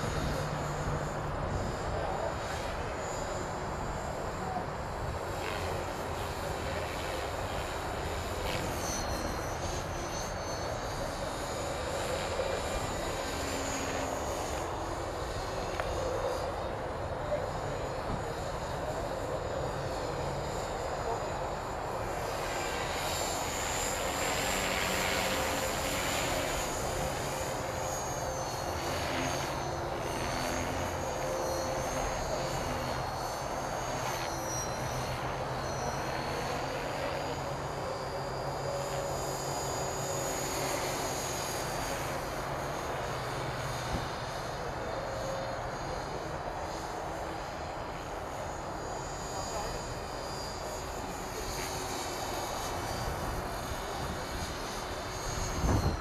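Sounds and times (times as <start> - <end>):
rc helicopter motor whine: 0.0 - 56.0
rotor blades whirring: 0.0 - 56.0.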